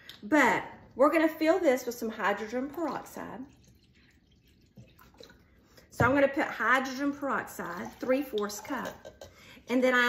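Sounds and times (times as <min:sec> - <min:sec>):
liquid trickling into a glass: 0:02.2 - 0:05.9, 0:07.6 - 0:09.4.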